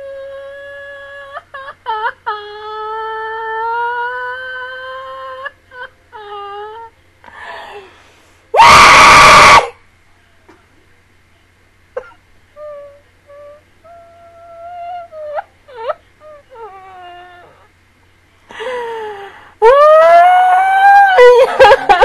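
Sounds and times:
woman whimpering: 0:00.0 - 0:07.9, 0:12.6 - 0:17.7.

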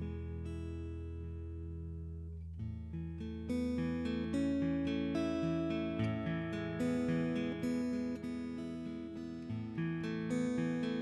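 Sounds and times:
acoustic guitar strumming chords: 0:03.0 - 0:11.0.

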